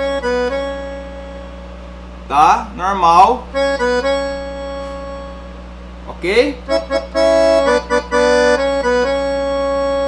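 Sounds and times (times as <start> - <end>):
digital accordion notes: 0.0 - 10.0.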